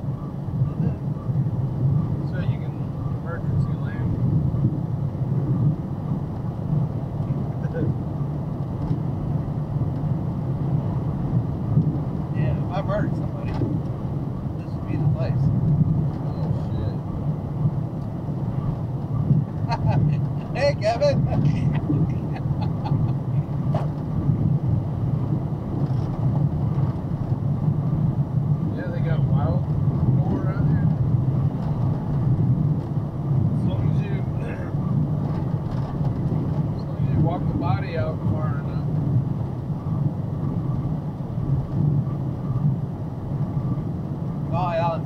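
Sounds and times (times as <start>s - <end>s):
truck engine and road drone: 0.0s - 45.0s.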